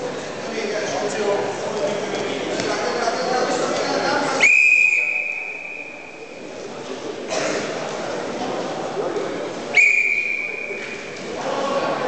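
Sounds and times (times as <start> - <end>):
referee's whistle blast: 4.4 - 6.2, 9.8 - 10.9.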